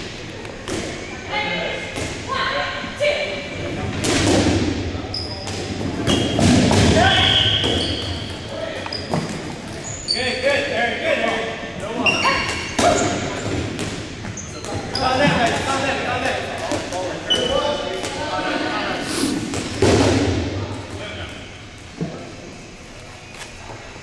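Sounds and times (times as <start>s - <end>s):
dodgeballs thudding and bouncing: 0.0s - 1.1s, 1.8s - 2.7s, 3.6s - 9.8s, 12.3s - 18.5s, 19.3s - 21.3s
sneakers squeaking: 5.0s - 10.7s, 11.9s - 18.5s.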